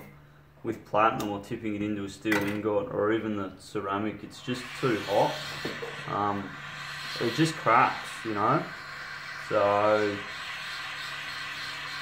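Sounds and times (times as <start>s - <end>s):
gas torch flame hissing: 4.1s - 12.0s.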